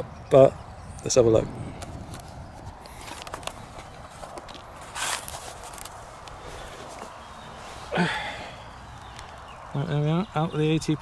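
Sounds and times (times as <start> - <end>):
footsteps on grass: 2.6 - 7.9.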